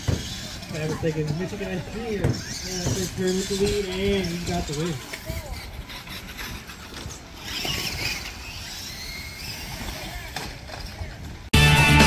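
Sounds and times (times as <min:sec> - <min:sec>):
faint distant voices: 0:00.0 - 0:11.5
rock music with guitars: 0:11.6 - 0:12.0.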